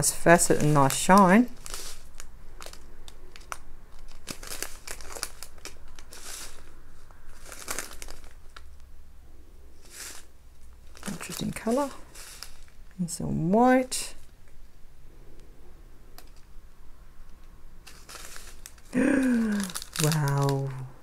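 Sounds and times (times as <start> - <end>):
plastic bags crinkling: 0.0 - 9.0, 9.8 - 13.2, 17.8 - 21.0
small beads clicking in bag: 0.6 - 6.7, 7.3 - 8.9, 9.8 - 12.8, 17.8 - 20.9.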